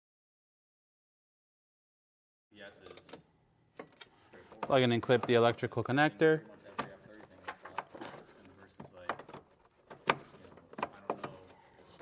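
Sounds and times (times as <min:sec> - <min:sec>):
light clicks and knocks of parts: 0:06.5 - 0:12.0.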